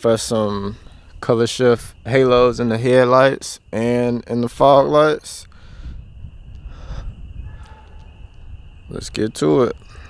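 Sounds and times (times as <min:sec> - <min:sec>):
high-pitched insect drone: 0:00.0 - 0:10.0
wind rumble on microphone: 0:00.5 - 0:03.0, 0:03.6 - 0:10.0.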